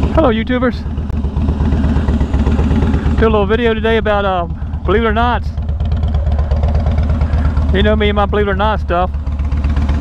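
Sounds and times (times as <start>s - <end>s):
motorcycle engine idling: 0.0s - 10.0s.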